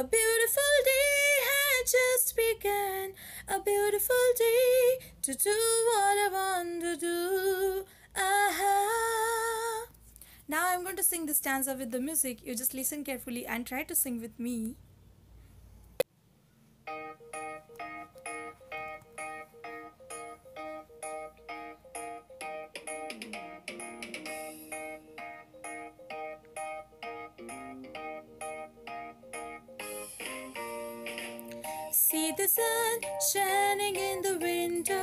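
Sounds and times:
instrumental backing track: 16.8s - 35.0s.

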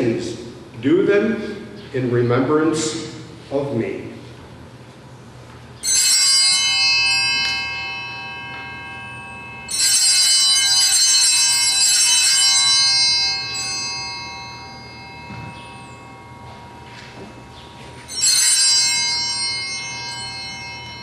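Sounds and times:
altar bells ringing: 5.8s - 21.0s.

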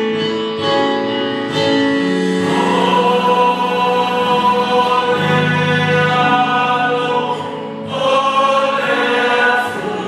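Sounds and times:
choir singing a hymn: 2.2s - 10.0s.

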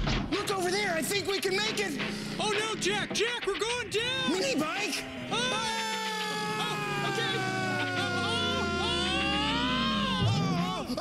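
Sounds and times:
man screaming: 5.3s - 11.0s.

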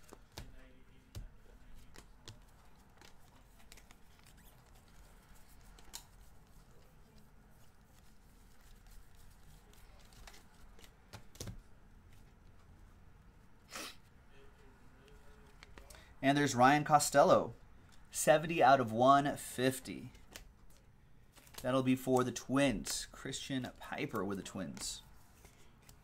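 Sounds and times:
cards flipped by hand: 1.2s - 12.3s, 15.1s - 15.9s, 20.1s - 21.7s, 24.0s - 26.0s.

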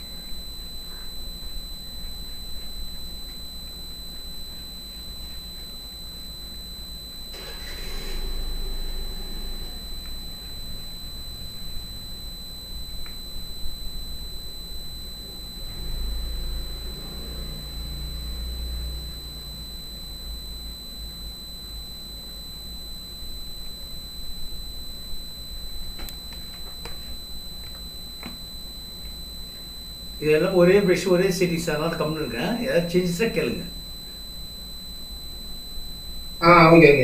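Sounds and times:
high-pitched whines: 0.0s - 37.0s
steady low hum: 0.0s - 37.0s.

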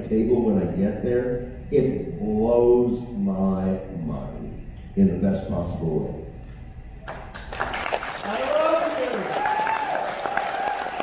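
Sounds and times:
audience applauding: 7.1s - 11.0s.

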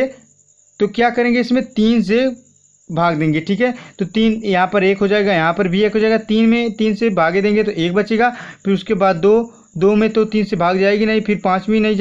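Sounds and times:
man speaking: 0.0s - 0.2s, 0.8s - 12.0s
faint high-pitched trill: 0.0s - 12.0s.

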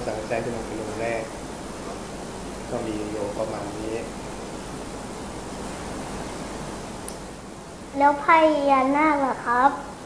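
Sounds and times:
man speaking: 0.0s - 1.4s, 2.7s - 4.2s
steady hiss: 0.0s - 10.0s.

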